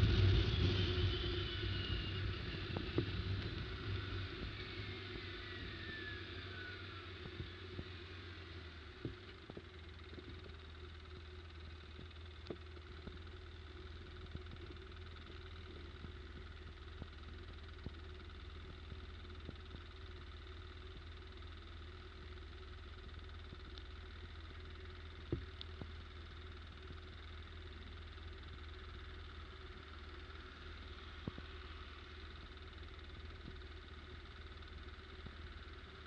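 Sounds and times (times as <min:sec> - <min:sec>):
falling whine: 0:00.0 - 0:10.6
atv engine idling: 0:00.0 - 0:36.0.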